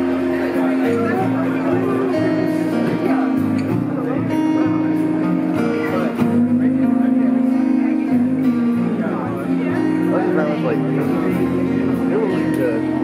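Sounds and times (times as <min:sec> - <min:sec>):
acoustic rock band playing: 0:00.0 - 0:13.0.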